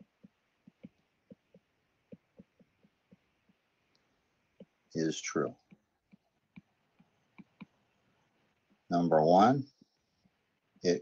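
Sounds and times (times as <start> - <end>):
stylus tapping on tablet screen: 0.0 - 8.9.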